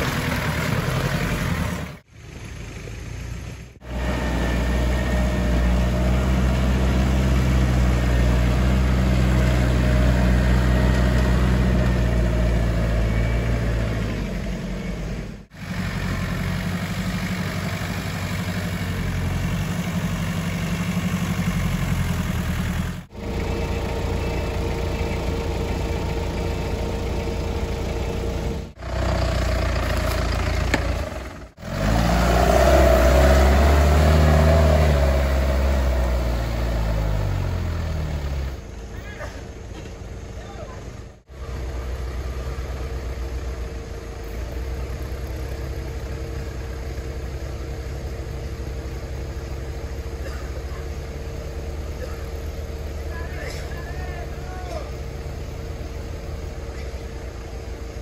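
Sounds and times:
off-road vehicle engine revving: 0.0s - 39.4s, 40.2s - 58.0s.

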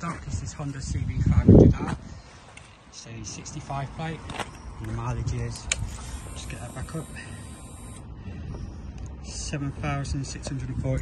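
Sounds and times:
fuel pump whirring: 3.7s - 10.7s.

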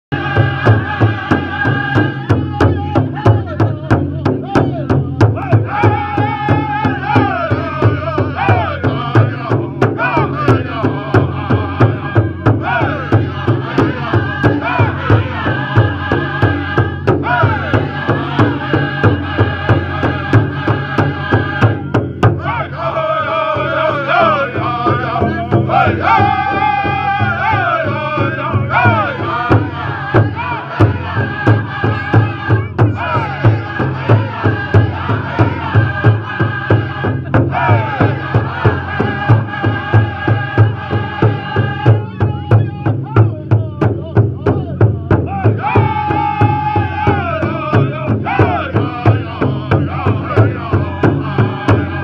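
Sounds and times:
group of singers chanting: 0.1s - 52.0s
steady drum beat: 0.1s - 52.0s.

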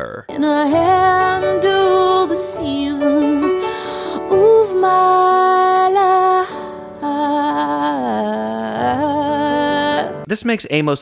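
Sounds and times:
piano: 0.2s - 10.6s
woman singing a slow ballad: 0.3s - 10.2s.

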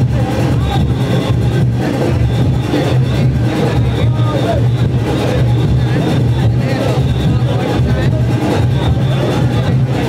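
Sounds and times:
dense drumming: 0.0s - 10.0s
voices: 0.0s - 10.0s.

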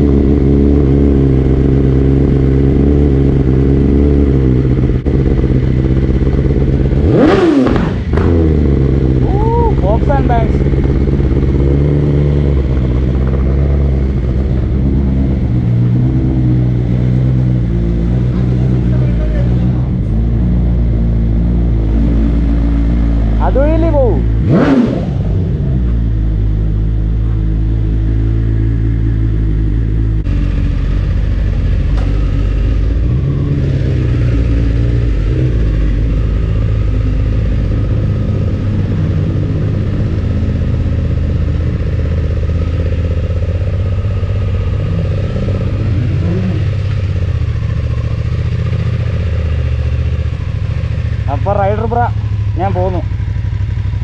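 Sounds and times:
motorcycle engine idling: 0.0s - 54.0s.

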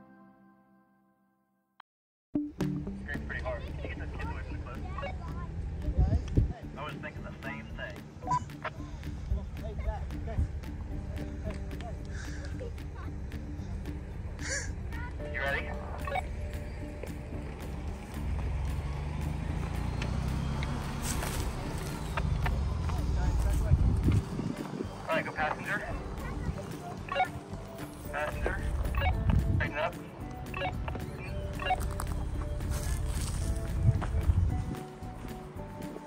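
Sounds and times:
distant voices talking: 3.0s - 35.7s.

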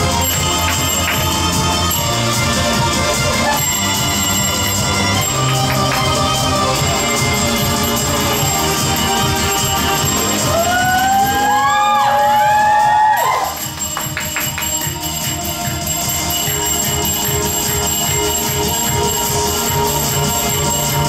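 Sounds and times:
belly dance music: 0.0s - 21.0s
steady drum beat: 0.0s - 21.0s.

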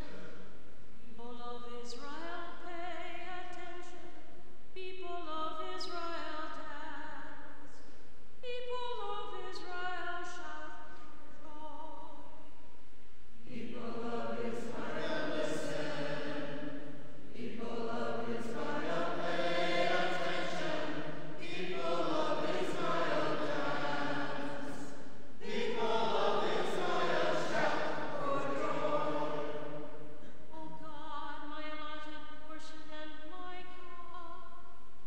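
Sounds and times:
choir singing a psalm: 13.4s - 30.2s.

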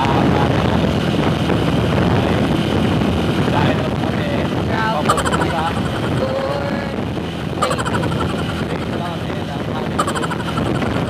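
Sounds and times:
people talking and laughing: 3.5s - 11.0s.

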